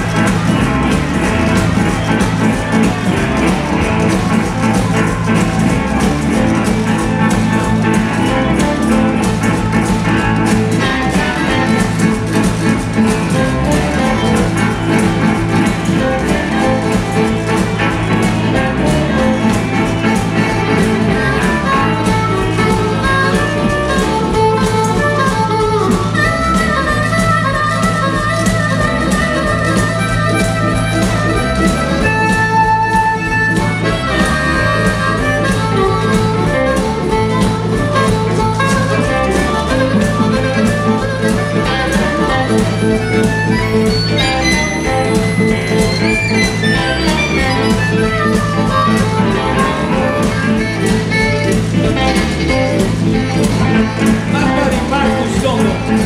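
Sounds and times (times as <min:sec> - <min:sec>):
amplified harmonica: 0:00.0 - 0:56.0
bass riff: 0:00.0 - 0:56.0
blues band playing: 0:00.0 - 0:56.0.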